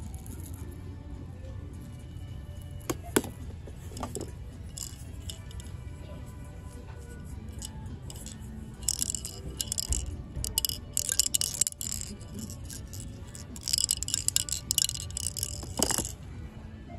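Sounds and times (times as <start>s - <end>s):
plastic ball rattling in toy: 2.6s - 5.8s, 7.4s - 16.2s.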